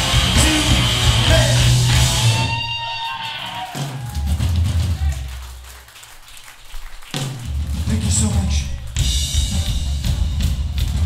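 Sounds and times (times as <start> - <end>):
electric guitars: 0.0 - 4.2
faint crowd noise: 0.0 - 11.0.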